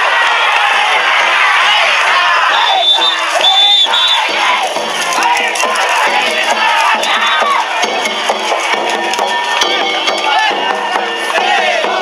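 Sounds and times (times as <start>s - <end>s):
crowd shouting and calling out: 0.0s - 12.0s
festival music: 0.0s - 12.0s
short high whistle blasts: 2.5s - 4.3s.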